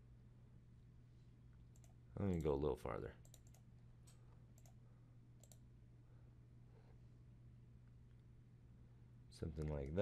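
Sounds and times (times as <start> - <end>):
computer mouse clicks: 1.7 - 2.6, 3.2 - 4.8, 5.4 - 5.7.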